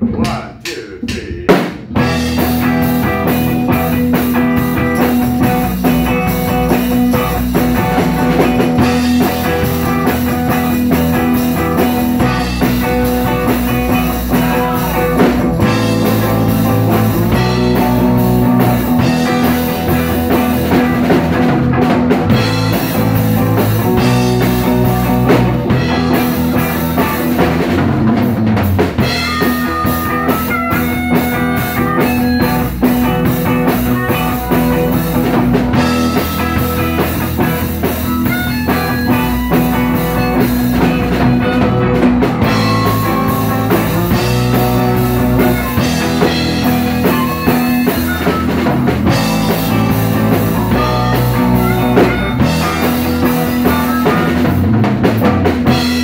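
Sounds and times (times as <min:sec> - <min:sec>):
drum kit: 0:00.0 - 0:56.0
electric guitar: 0:01.3 - 0:56.0.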